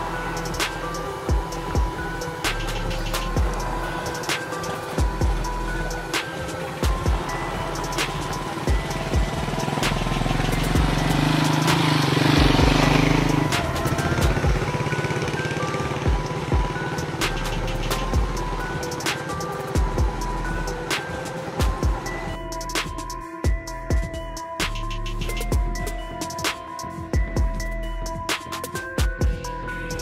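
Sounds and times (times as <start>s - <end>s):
motorbike engine passing: 0.0s - 22.2s
electronic music with steady beat: 0.0s - 30.0s.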